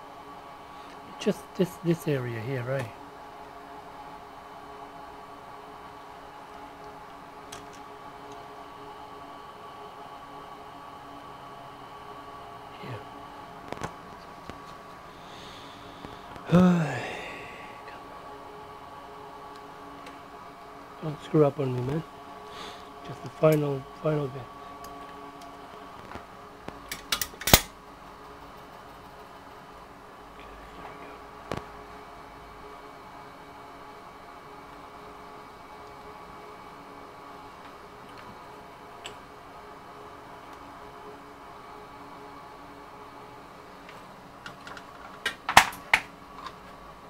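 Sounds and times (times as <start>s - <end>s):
bench fan humming: 0.0s - 47.0s.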